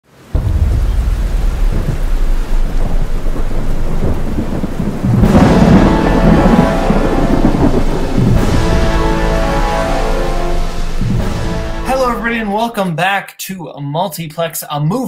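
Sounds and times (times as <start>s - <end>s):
heavy rain: 0.0s - 12.8s
rumbling thunder: 0.2s - 12.2s.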